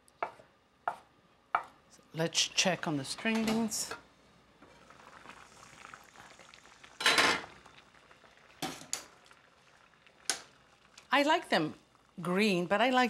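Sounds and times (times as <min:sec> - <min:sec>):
water bubbling at a boil: 0:04.6 - 0:12.8.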